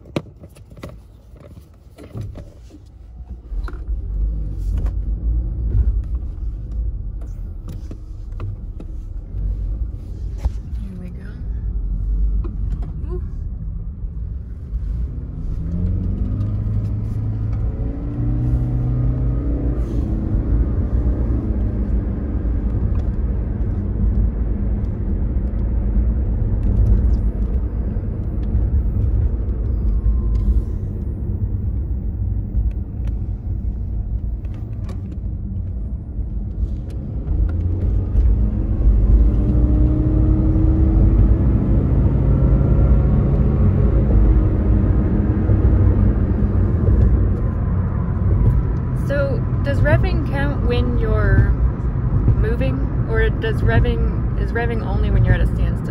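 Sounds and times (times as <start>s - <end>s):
low cabin rumble: 1.0s - 55.9s
car engine revving: 14.8s - 55.9s.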